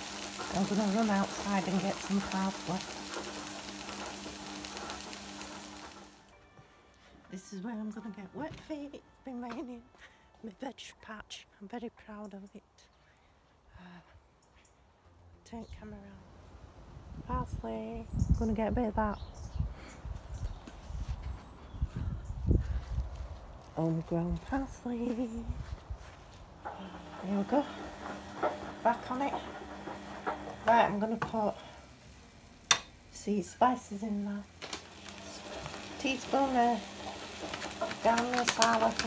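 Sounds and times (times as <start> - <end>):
spitting crackles: 0.0 - 6.2
vegetables sizzling in frying pan: 0.0 - 6.3, 26.6 - 39.0.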